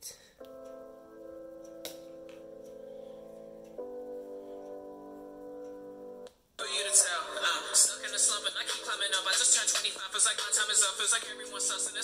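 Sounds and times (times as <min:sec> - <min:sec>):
tinny keyboard chords from phone speaker: 0:00.4 - 0:06.3
fuller louder music: 0:00.4 - 0:12.0.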